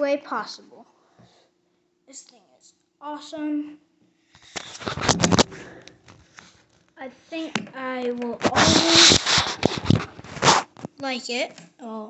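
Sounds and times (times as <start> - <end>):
phone handling rustle and clicks: 4.4 - 6.9.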